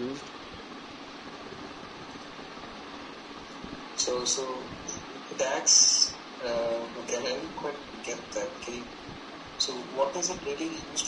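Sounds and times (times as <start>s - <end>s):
voice call line hiss: 3.9s - 11.0s.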